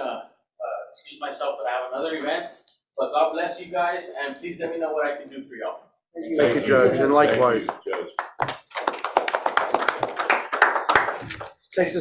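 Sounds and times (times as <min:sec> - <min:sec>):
small group applauding: 0:06.9 - 0:11.7.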